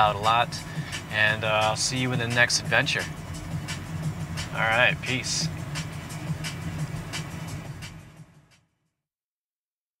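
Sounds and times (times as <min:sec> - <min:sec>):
road and engine rumble in car: 0:00.0 - 0:08.6.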